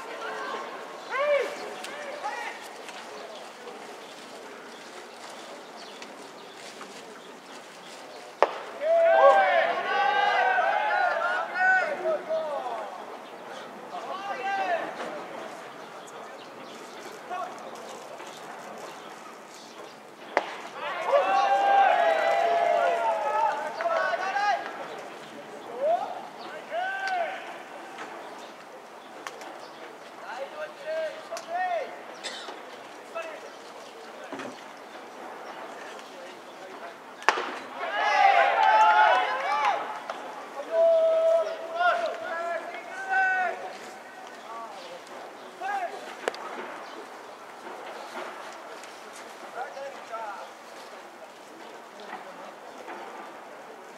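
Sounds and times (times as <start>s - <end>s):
murmur of background voices: 0.0s - 53.9s.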